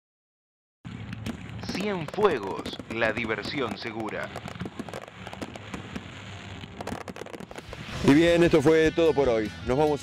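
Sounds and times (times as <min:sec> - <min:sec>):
fireworks crackling: 0:00.9 - 0:09.2.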